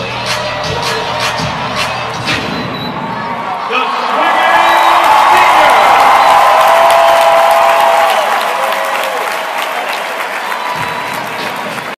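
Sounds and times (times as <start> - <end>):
crowd applauding and cheering: 3.0 - 11.9
whoops: 4.8 - 9.7.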